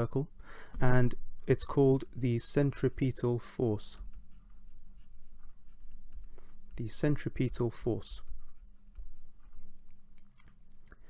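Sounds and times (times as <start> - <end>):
stylus scratching on tablet: 1.6 - 10.2.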